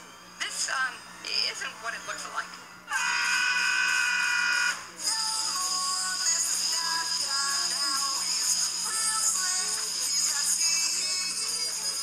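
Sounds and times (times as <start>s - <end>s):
high-pitched cartoon voices screaming: 2.9s - 4.8s
pitched-up singing over upbeat music: 2.9s - 12.0s.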